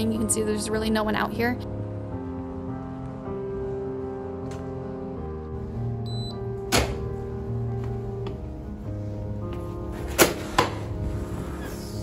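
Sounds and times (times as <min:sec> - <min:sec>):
background music: 0:00.0 - 0:12.0
keycard reader beep: 0:06.0 - 0:06.4
sharp thunk: 0:06.7 - 0:07.0.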